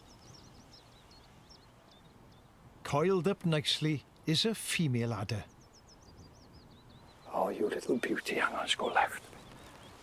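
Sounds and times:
leaf warbler singing: 0:00.0 - 0:10.0.

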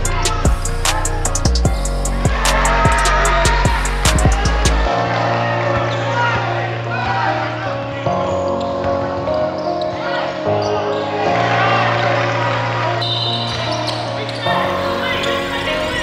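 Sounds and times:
sustained bass notes: 0:00.0 - 0:05.0.

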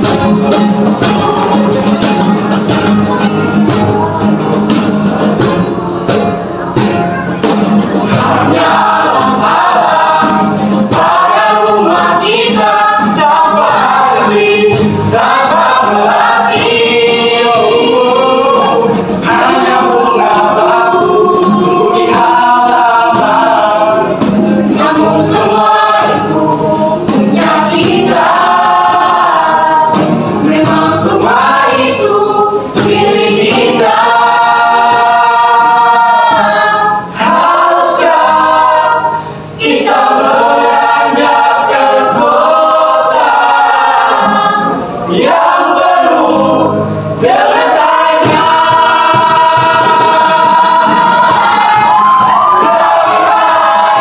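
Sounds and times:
group singing in harmony: 0:00.0 - 0:54.0.

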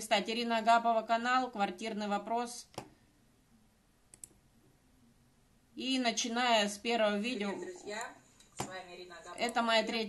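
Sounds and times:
computer mouse clicks: 0:04.1 - 0:04.4.

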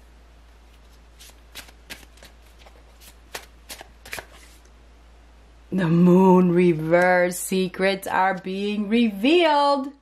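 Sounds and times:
cards shuffling snaps and flicks: 0:00.7 - 0:04.7.

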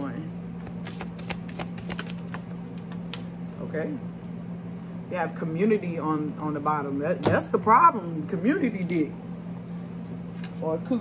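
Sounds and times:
steady low hum: 0:00.0 - 0:11.0
cards being shuffled: 0:00.6 - 0:03.3.

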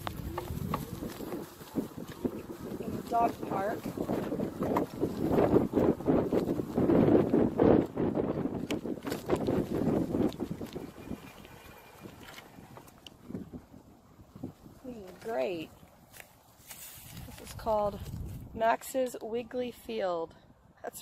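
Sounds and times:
wind on phone microphone: 0:00.0 - 0:16.1, 0:16.8 - 0:19.7.

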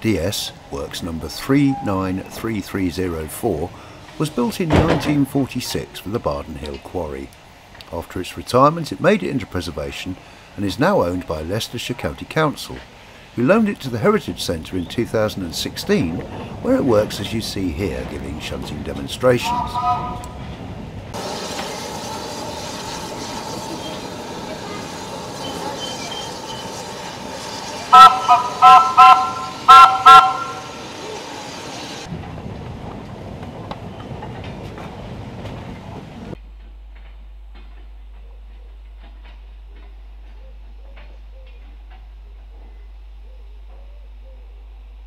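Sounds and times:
small locomotive running: 0:13.5 - 0:20.6, 0:21.2 - 0:36.4
locomotive horn toots: 0:19.4 - 0:20.4, 0:27.8 - 0:30.8.

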